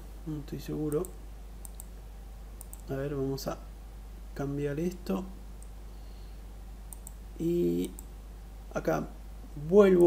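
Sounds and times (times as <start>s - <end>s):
computer mouse clicks: 0.9s - 1.9s, 2.6s - 2.9s, 6.9s - 7.2s.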